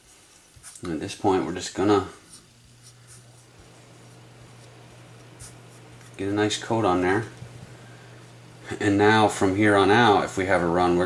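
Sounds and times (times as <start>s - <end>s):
steady low hum: 0.0s - 11.0s
fingers rubbing wet wood: 2.2s - 6.4s.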